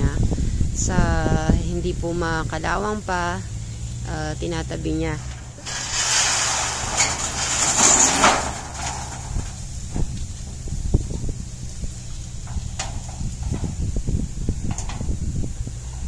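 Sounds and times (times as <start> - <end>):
metal roofing sheets scraping: 4.8 - 16.0
light knocks of metal sheets: 14.6 - 15.2.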